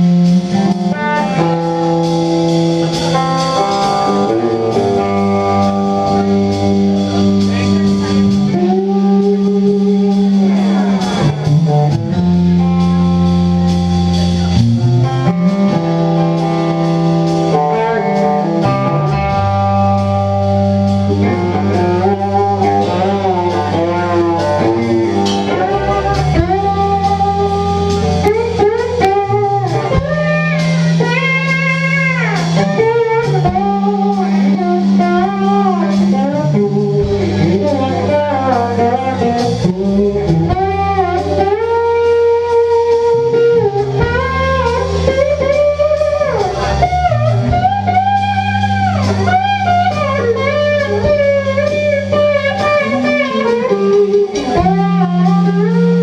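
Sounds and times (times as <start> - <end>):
drum kit: 0.0 - 56.0
electric bass: 0.0 - 56.0
electric guitar lead lines: 0.0 - 56.0.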